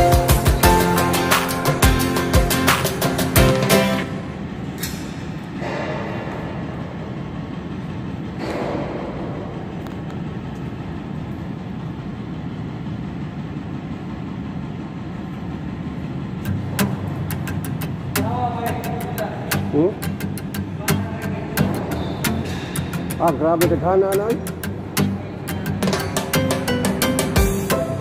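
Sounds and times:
mechanical electrical hum: 0.0s - 28.0s.

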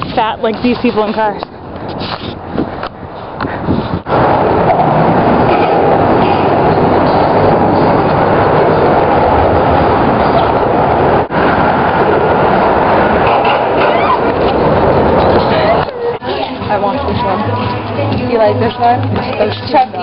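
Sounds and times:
vehicles rumbling over bridge: 0.0s - 20.0s.

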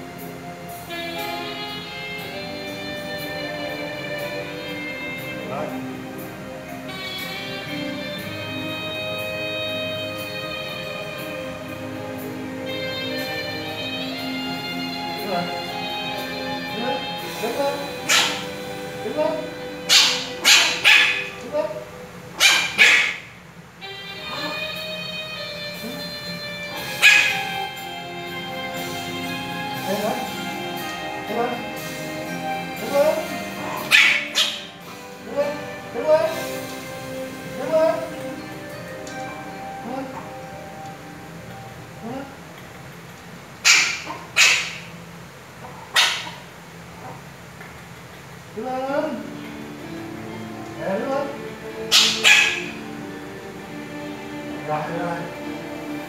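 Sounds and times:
background music: 0.0s - 56.0s
puppy barking: 17.8s - 18.6s, 19.8s - 23.3s, 24.3s - 24.7s, 26.7s - 27.8s, 33.1s - 35.6s, 43.6s - 45.0s, 45.6s - 47.2s, 51.9s - 52.8s.

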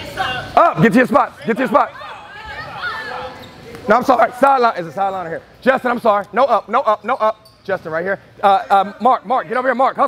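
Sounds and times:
people talking in echoing gym: 0.0s - 10.0s.

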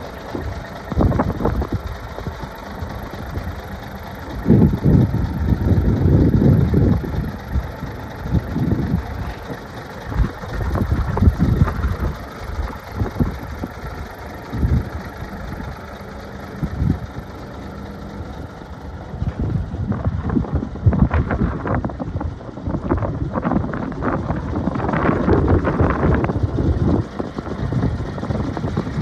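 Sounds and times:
wind gusting on microphone: 0.0s - 2.4s, 4.3s - 13.9s, 19.1s - 29.0s
diesel engine idling: 0.0s - 29.0s.

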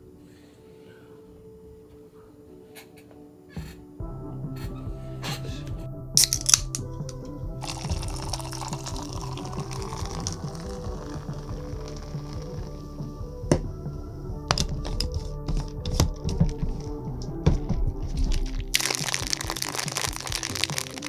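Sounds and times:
background music: 0.0s - 21.0s
cola pouring into a cup: 7.6s - 12.8s, 18.7s - 21.0s.

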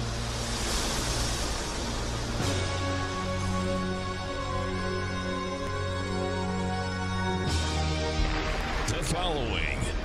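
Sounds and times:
whoosh of noise: 0.0s - 4.0s.

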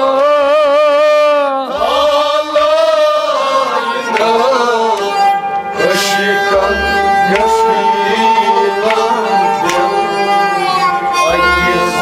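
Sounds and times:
bowed string melody: 1.7s - 12.0s.

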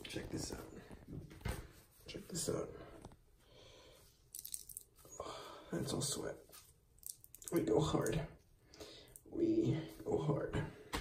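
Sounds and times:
wet cloth squishing: 4.3s - 5.1s.

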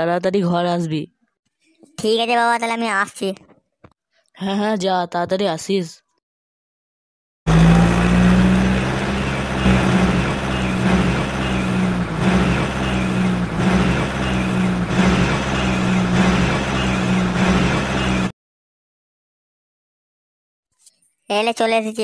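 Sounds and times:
car engine drone: 7.5s - 18.3s.

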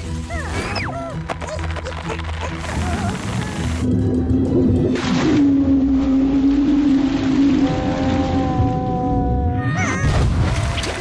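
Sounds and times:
cartoon soundtrack music: 0.0s - 6.7s.

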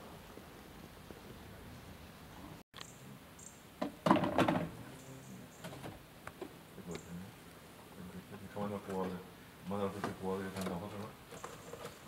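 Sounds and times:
knocks and clatter: 3.8s - 4.8s.

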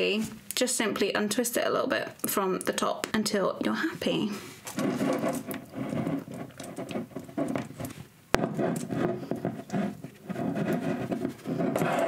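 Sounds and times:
wire scratching and rustling: 4.6s - 12.0s.

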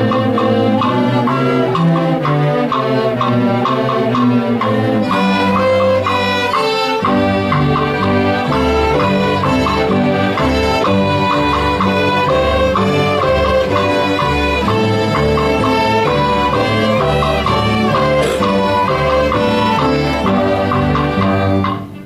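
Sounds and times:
string orchestra playing: 0.0s - 22.0s.

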